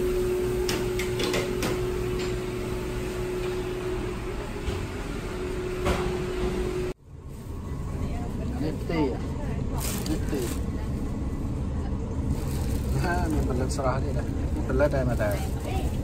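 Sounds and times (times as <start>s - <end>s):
low background rumble: 6.9s - 16.0s.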